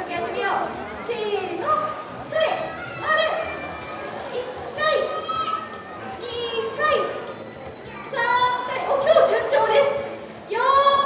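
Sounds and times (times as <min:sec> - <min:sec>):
children shouting: 0:01.8 - 0:09.4.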